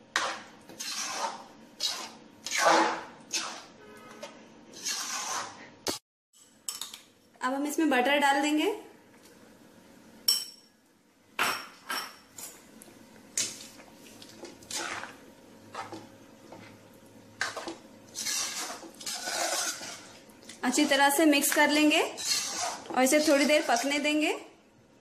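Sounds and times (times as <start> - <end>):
metal spoon scraping a pan: 0.1 - 5.7, 17.4 - 24.0.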